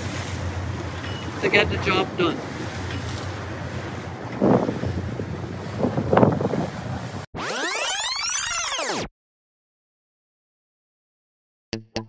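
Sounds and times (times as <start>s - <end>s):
water rushing past boat hull: 0.0s - 7.3s
wind buffeting microphone: 0.0s - 7.3s.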